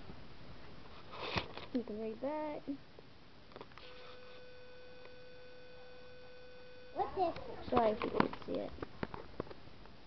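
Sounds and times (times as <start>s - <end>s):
faint steady electronic tone: 1.8s - 8.8s.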